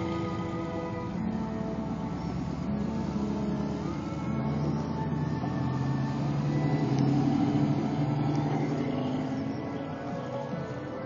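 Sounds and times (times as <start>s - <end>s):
truck engine driving past: 0.0s - 11.0s.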